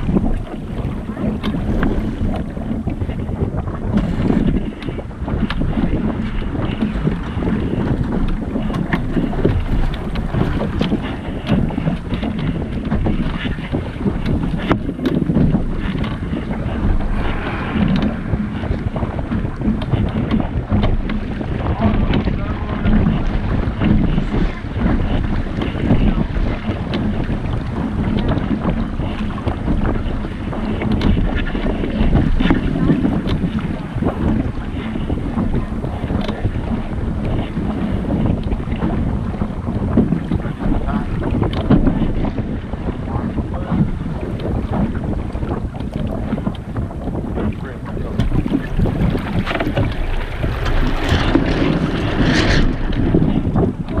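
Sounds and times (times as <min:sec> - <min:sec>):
water rushing past hull: 0:00.0 - 0:54.0
wind buffeting microphone: 0:00.0 - 0:54.0.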